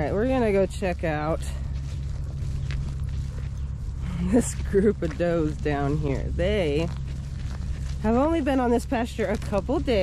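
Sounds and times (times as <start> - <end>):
footsteps in dry grass: 0.0 - 10.0
low rumble: 0.0 - 10.0.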